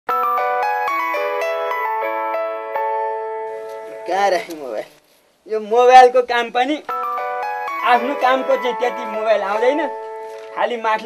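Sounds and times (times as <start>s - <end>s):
phone ringtone chiming melody: 0.1s - 4.3s, 6.9s - 11.0s.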